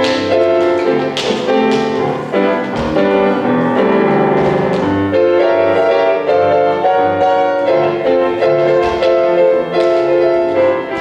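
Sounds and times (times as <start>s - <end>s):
grand piano playing: 0.0s - 11.0s
sharply struck piano chords: 0.0s - 11.0s.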